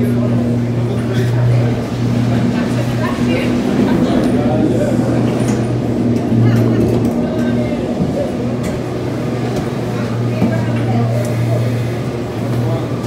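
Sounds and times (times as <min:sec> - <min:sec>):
indistinct voices: 0:00.0 - 0:13.0
machinery humming: 0:00.0 - 0:13.0.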